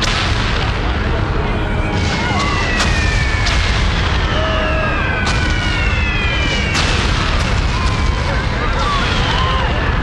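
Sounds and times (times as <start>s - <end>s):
explosion blast: 0.0s - 9.5s
rumble of battle noise: 0.0s - 10.0s.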